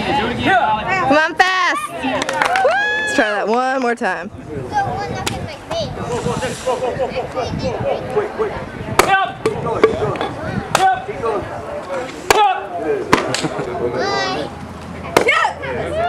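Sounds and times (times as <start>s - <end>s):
spectators' voices and shouts: 0.0s - 16.0s.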